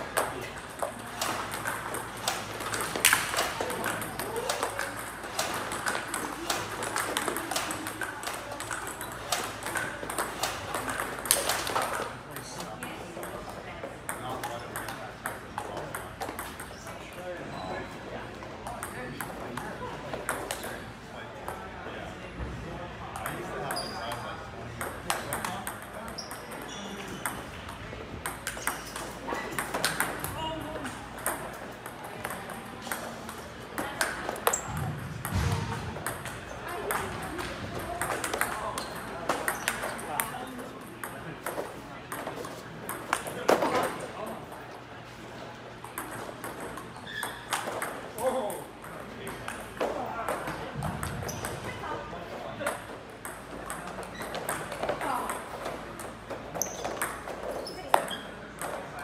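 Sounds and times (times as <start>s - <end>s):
voices chattering: 0.0s - 59.0s
table tennis ball clicking: 0.2s - 12.0s.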